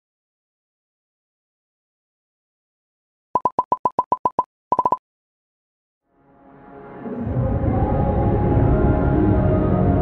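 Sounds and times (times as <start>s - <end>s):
short high electronic beeps: 3.4s - 5.0s.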